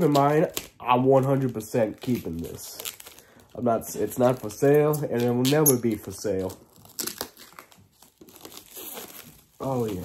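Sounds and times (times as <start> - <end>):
plastic wrapping crinkling: 0.0 - 10.0
sharp plastic crackles: 0.0 - 10.0.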